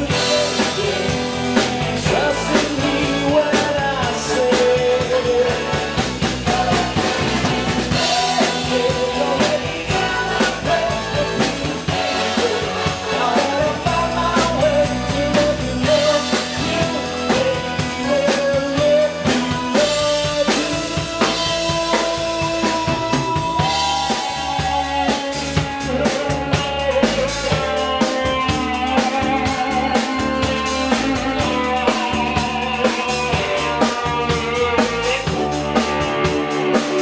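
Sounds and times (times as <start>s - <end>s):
drum kit beat: 0.0s - 37.0s
electric bass: 0.0s - 37.0s
keyboards: 0.0s - 37.0s.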